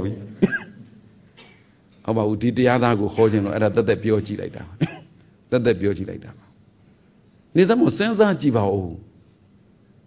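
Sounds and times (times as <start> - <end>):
man clearing throat: 0.4 - 1.7, 4.8 - 5.2
man speaking: 2.1 - 4.8.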